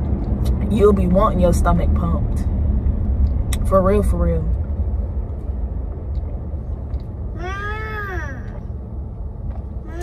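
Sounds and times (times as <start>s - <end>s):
road rumble inside car: 0.0s - 10.0s
child calling: 7.4s - 8.6s.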